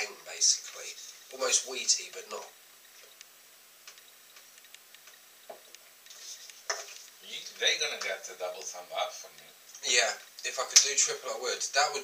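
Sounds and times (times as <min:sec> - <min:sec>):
faint small clicks: 0:03.0 - 0:07.2.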